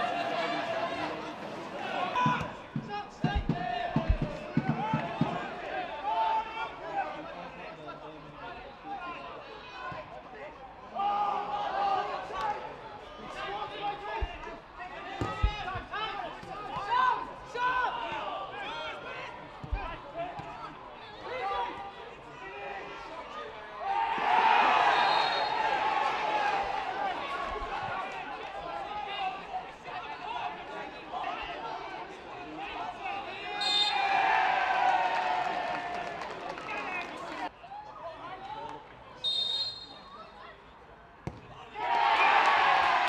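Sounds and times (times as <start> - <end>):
crowd cheering: 0.0 - 7.3, 22.4 - 39.8, 41.6 - 43.0
players and crowd shouting: 0.0 - 40.6, 41.5 - 43.0
football being kicked: 41.2 - 41.4.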